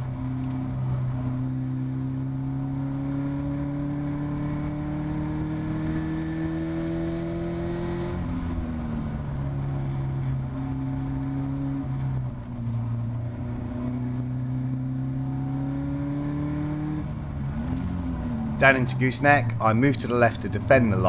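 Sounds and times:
race car engine revving: 0.0s - 21.0s.

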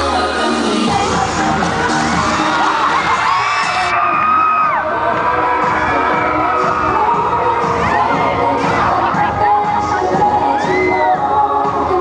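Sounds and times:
pop dance music: 0.0s - 12.0s
audience cheering and shrieking: 1.0s - 11.7s.

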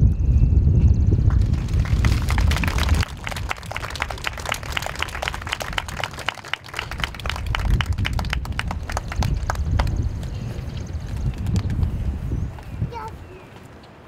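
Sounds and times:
wind buffeting microphone: 0.0s - 13.8s
crowd applauding: 1.2s - 12.0s.

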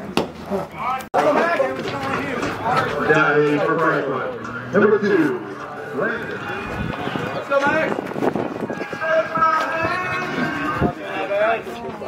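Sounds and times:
people talking indistinctly: 0.5s - 12.0s.

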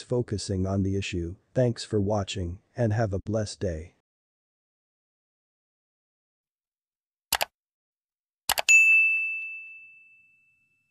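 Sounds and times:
quick clicks: 7.3s - 7.5s
bright bell ding: 8.7s - 10.9s.

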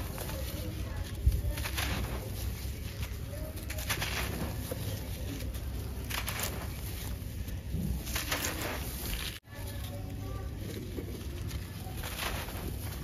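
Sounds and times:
sand-cement lump crunching: 0.0s - 10.0s, 11.1s - 13.0s.

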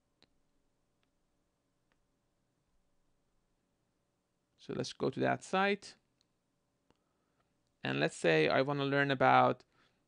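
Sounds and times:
man speaking: 4.6s - 6.0s, 7.8s - 9.7s.

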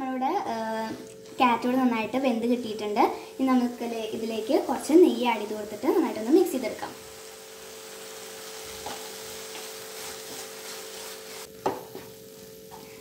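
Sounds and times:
carrot sizzling in frying pan: 0.0s - 13.0s
wooden spatula stirring in pan: 5.8s - 13.0s
spatula knocking on pan: 11.6s - 12.2s.

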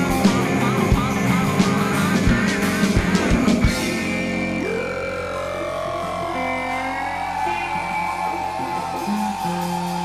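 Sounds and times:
bass line: 0.0s - 10.0s
electric guitar bending long notes: 0.0s - 10.0s.

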